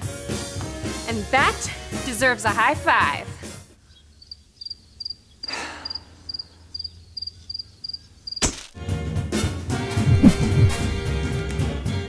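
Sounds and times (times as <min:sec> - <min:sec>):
cricket chirping: 0:03.8 - 0:08.6.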